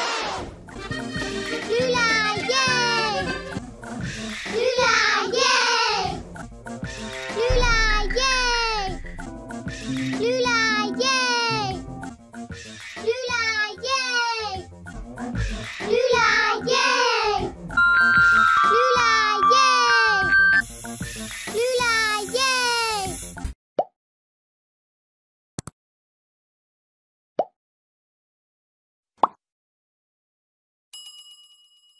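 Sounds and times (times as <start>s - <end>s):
low thud: 7.5s - 9.6s
rising pop sound effects: 7.5s - 10.1s
cartoon child voice calling: 18.0s - 20.3s
bell ding: 31.0s - 31.9s.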